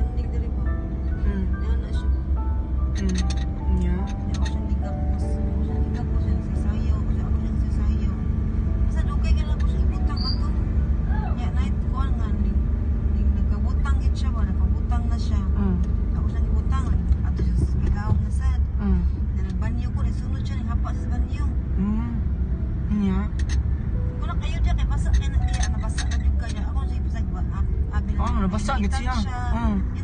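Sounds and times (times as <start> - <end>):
people talking: 0.0 - 2.2, 3.0 - 8.2, 8.9 - 22.2, 22.9 - 23.4, 24.2 - 30.0
car rumble from inside: 0.0 - 30.0.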